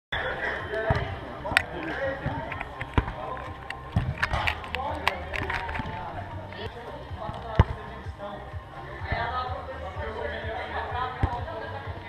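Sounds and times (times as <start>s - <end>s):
people's voices: 0.1s - 12.0s
ball struck with sharp thuds: 3.8s - 4.7s, 7.3s - 7.8s.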